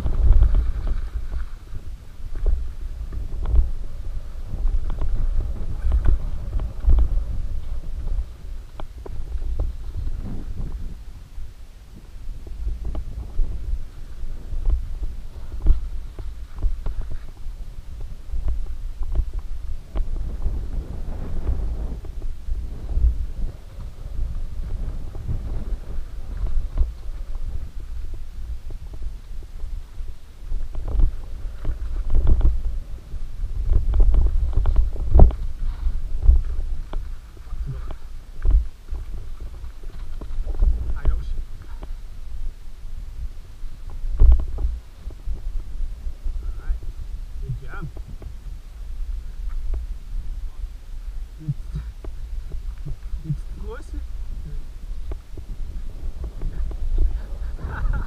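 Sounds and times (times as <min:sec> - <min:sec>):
low rumble of bike tyres: 0:00.0 - 0:58.0.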